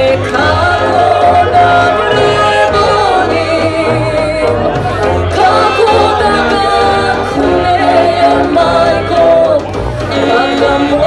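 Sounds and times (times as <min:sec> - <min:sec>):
brass band playing: 0:00.0 - 0:11.0
woman singing: 0:00.0 - 0:11.0.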